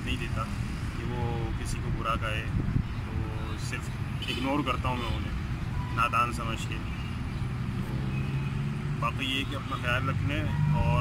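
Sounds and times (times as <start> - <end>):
low rumble of road traffic: 0.0 - 11.0
vehicle engine humming: 0.0 - 11.0.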